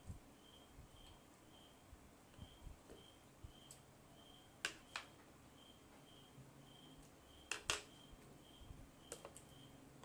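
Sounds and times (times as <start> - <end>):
faint high chirp: 0.4 - 9.8.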